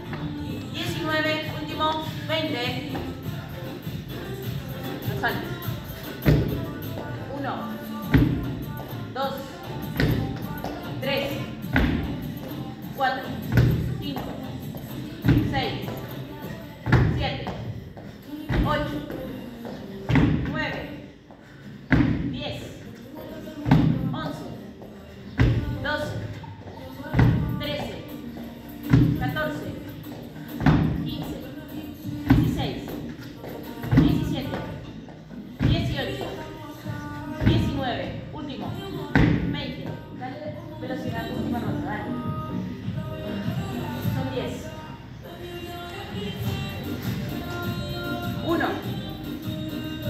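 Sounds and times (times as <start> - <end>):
music with vocals: 0.0 - 50.0
feet thudding on wooden box: 32.3 - 34.7.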